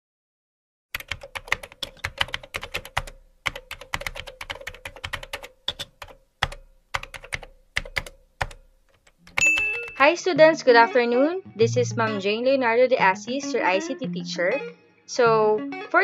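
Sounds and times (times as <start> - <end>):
computer keyboard typing: 1.0 - 10.0.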